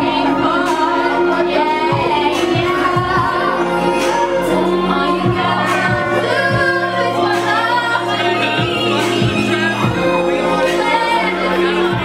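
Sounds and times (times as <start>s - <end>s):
backing music with bass and beat: 0.0s - 12.0s
woman singing into microphone: 0.0s - 12.0s.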